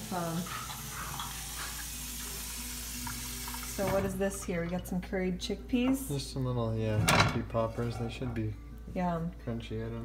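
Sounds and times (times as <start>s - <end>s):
chickpeas sizzling in oil: 0.0s - 4.6s.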